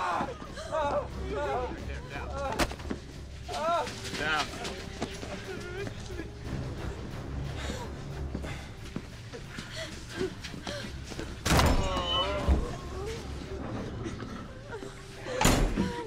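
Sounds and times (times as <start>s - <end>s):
people whimpering and gasping: 0.0s - 16.0s.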